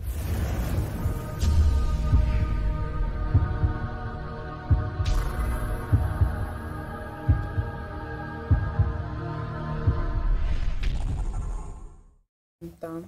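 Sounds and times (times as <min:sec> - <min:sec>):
deep heartbeat thumps: 0:01.4 - 0:09.2, 0:09.8 - 0:10.3.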